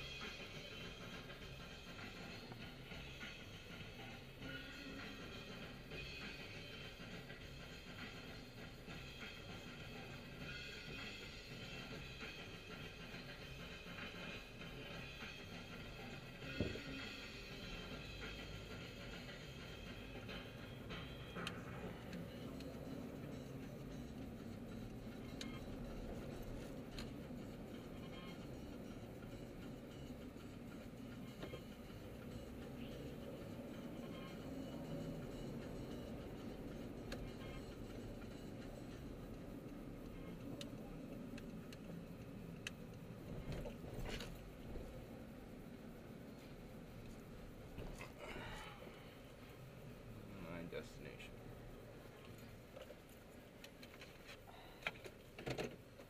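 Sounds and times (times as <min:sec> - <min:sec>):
music from car stereo: 0:00.0 - 0:56.0.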